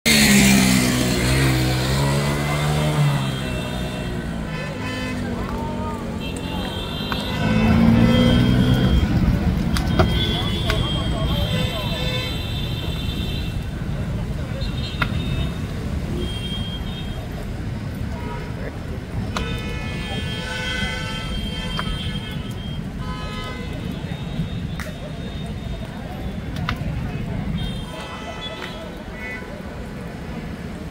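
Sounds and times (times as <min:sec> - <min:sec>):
vehicle engines running: 0:00.1 - 0:16.4
vehicle horn blasts: 0:02.6 - 0:05.4, 0:06.2 - 0:09.2, 0:09.9 - 0:13.6, 0:19.4 - 0:24.7.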